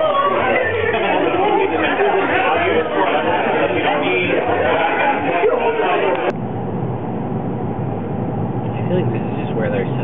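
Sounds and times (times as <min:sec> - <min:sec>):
faint voices: 0:00.0 - 0:06.4
party chatter: 0:00.0 - 0:06.4
car engine and road noise: 0:00.0 - 0:10.0.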